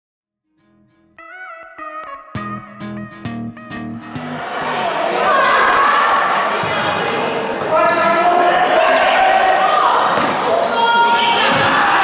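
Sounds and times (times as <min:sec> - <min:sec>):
gym crowd noise: 0:04.3 - 0:12.0.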